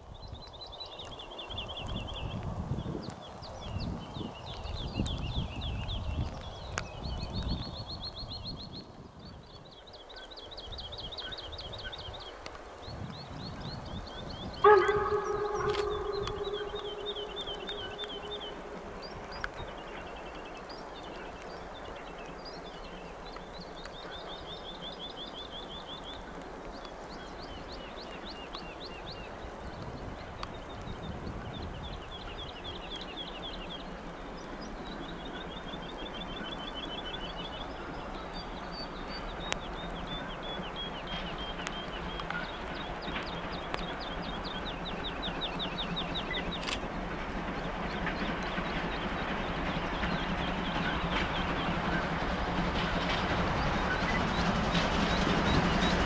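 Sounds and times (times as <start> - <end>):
distant steam train rumble: 0.0 - 56.0
songbird chirping: 0.1 - 56.0
bird chirping: 13.2 - 26.2
steam locomotive whistle: 14.6 - 18.8.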